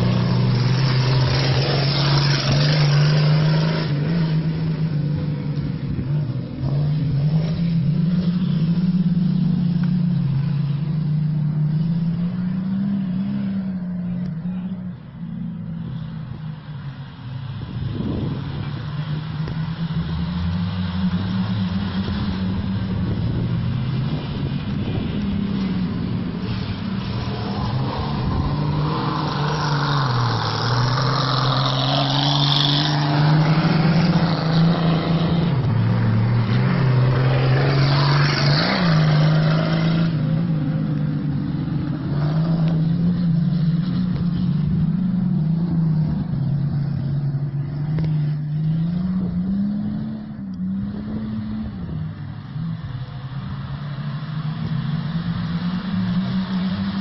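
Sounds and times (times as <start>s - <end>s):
race car engine running hard: 0.0s - 57.0s.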